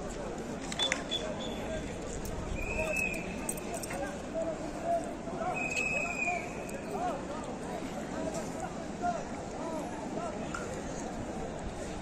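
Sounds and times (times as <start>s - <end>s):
street crowd voices: 0.0s - 12.0s.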